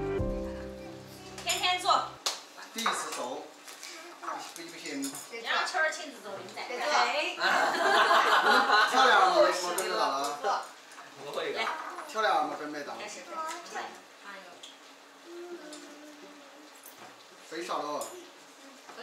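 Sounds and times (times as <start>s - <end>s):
people laughing: 7.4s - 9.4s.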